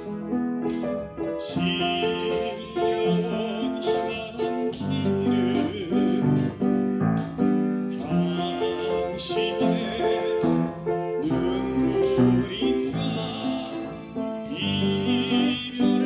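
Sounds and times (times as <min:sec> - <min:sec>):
upright piano melody: 0:00.0 - 0:16.0.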